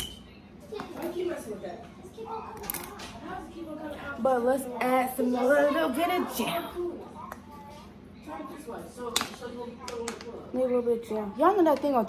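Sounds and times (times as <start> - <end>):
murmured talk: 0.1 - 12.0.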